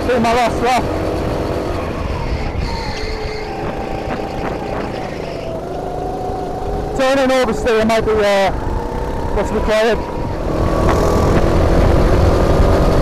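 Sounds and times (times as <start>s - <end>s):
kart engine at speed: 0.0s - 13.0s
heavy rushing noise: 0.8s - 13.0s.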